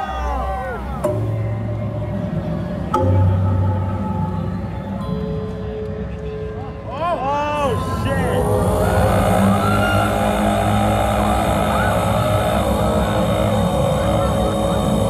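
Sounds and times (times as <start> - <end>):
sustained droning chord: 0.0 - 6.8, 7.7 - 15.0
wailing pitch glides: 7.6 - 15.0
deep rumble: 7.7 - 15.0.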